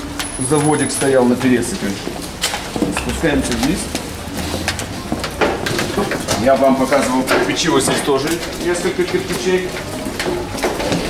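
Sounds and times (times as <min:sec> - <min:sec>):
footsteps on stairs: 0:00.0 - 0:11.0.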